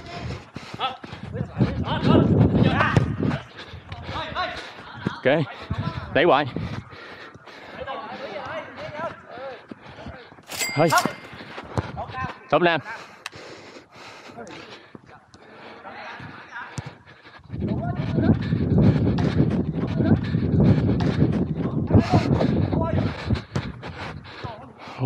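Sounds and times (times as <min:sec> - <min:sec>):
hard breathing: 0:00.0 - 0:02.2, 0:03.2 - 0:12.0, 0:12.8 - 0:25.0
wind buffeting microphone: 0:00.0 - 0:07.8, 0:17.4 - 0:24.4.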